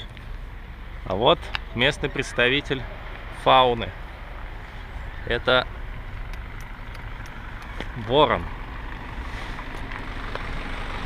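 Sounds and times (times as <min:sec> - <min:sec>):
low outdoor background noise: 0:00.0 - 0:11.0.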